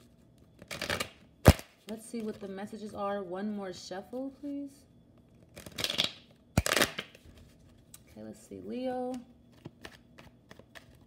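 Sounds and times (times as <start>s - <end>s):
cards being shuffled: 5.4s - 7.9s.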